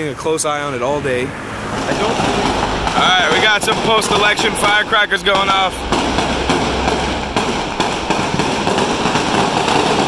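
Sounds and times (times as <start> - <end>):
firecrackers crackling: 1.7 - 10.0.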